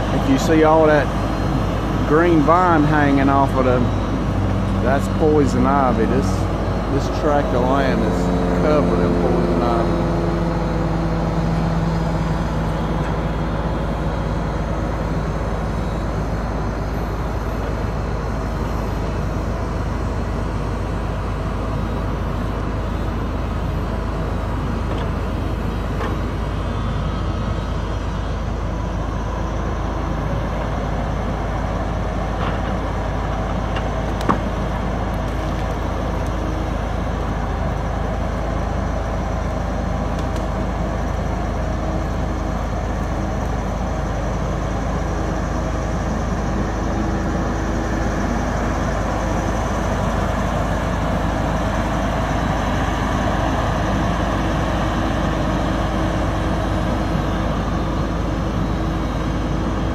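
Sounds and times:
diesel engine running under load: 0.0s - 59.9s.

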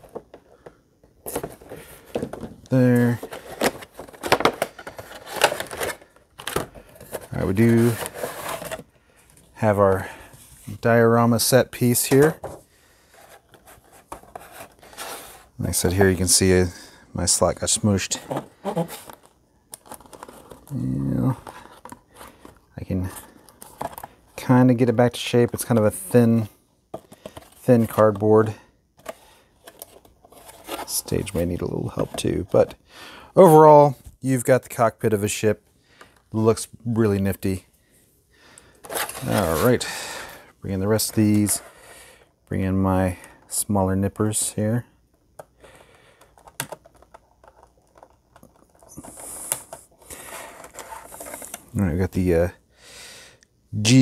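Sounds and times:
plastic and cardboard packaging crinkling: 1.2s - 9.4s, 18.3s - 24.5s, 38.9s - 39.8s
cardboard scraping rustle: 1.3s - 8.9s, 13.1s - 15.6s.

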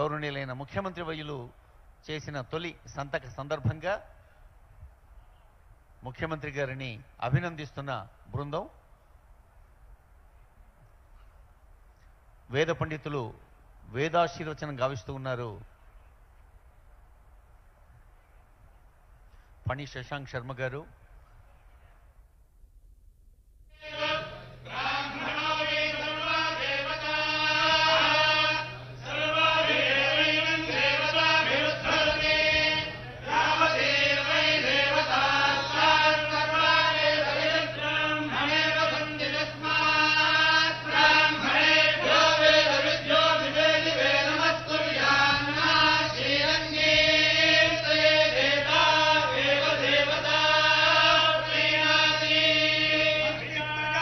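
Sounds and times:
men chanting in unison: 23.8s - 54.0s.

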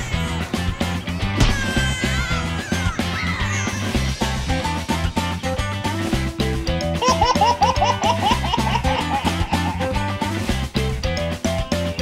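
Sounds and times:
background music: 0.0s - 12.0s
toddler giggling: 7.0s - 9.9s.

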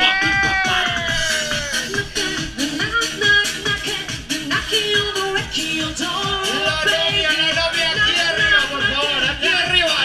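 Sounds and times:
live dance music: 0.0s - 10.0s.

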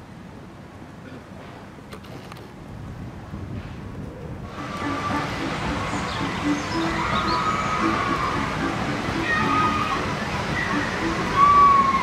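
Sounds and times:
steady rushing noise: 2.6s - 12.0s
faint music: 4.4s - 12.0s.

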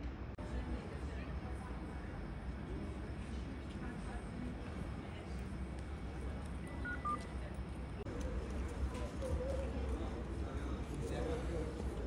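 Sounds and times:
short electronic beeps: 6.7s - 7.3s.

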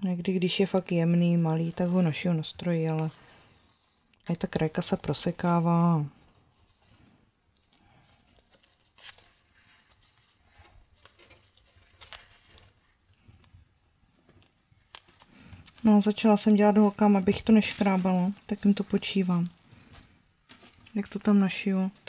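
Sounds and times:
fabric rustling and crinkling: 4.7s - 22.0s.

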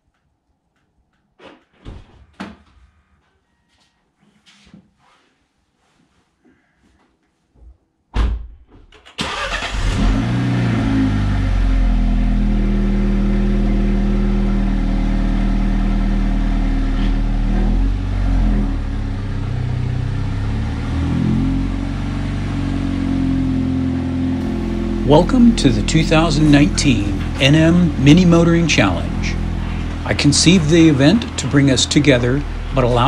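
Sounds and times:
car engine starting and idling: 9.0s - 33.0s.

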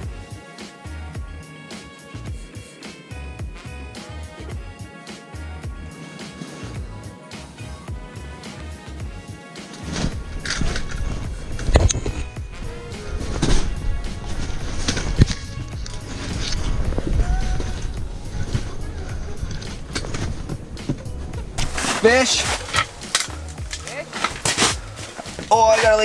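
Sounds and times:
background music: 0.0s - 26.0s
clothing rustling: 9.7s - 26.0s
knocks and scrapes of gear: 21.6s - 25.6s.

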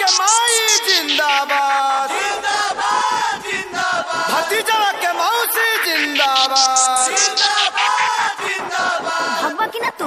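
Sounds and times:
bending sung voices: 0.0s - 10.0s.

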